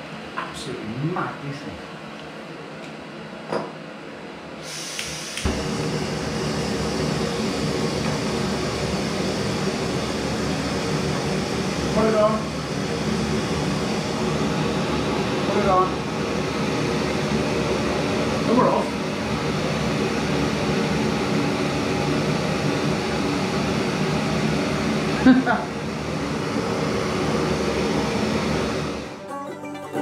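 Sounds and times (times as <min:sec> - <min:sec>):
gas stove burner hissing: 0:04.6 - 0:29.1
second stove burning: 0:04.6 - 0:29.1.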